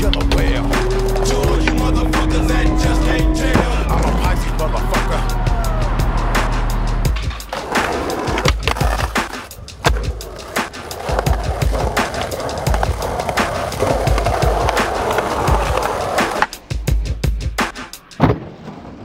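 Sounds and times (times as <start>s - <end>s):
backing music: 0.0s - 18.2s
skateboard wheels rolling on concrete: 0.0s - 19.0s
skateboard tail pops and landings: 17.6s - 19.0s.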